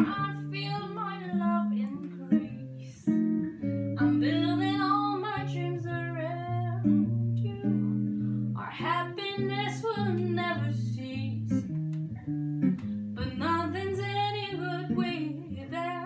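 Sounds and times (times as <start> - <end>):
woman singing: 0.0 - 3.3, 4.0 - 11.7, 13.2 - 16.0
electric jazz guitar chords: 0.0 - 16.0.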